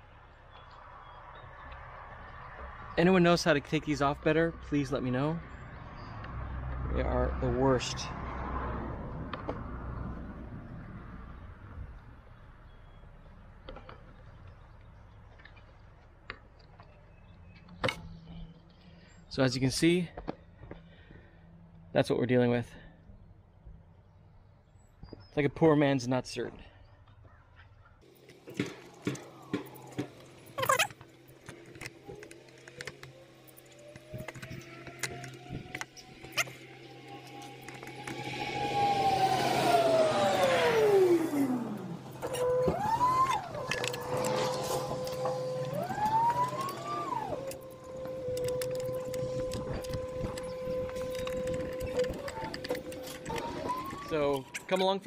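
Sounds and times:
vehicle engine passing: 0:00.8 - 0:12.2, 0:28.0 - 0:54.8.

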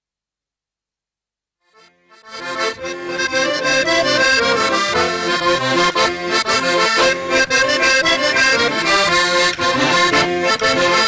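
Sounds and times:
accordion folk dance tune: 0:01.7 - 0:11.0.

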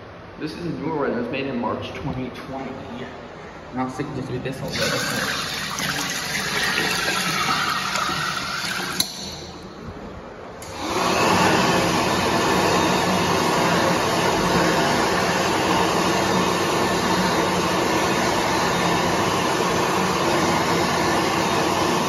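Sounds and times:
electric hand dryer blowing: 0:04.7 - 0:09.2, 0:10.6 - 0:22.0.

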